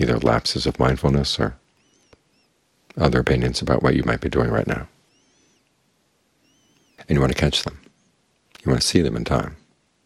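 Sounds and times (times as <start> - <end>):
faint high chirps: 1.6 - 2.8, 4.6 - 8.4.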